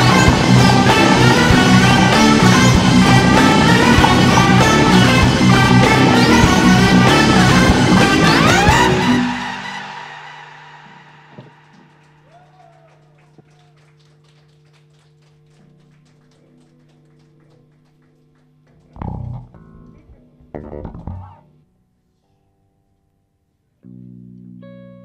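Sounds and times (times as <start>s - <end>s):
live rock band chord: 0.0s - 12.0s
drone of held notes: 0.0s - 12.6s
amplifier hum: 19.0s - 21.9s.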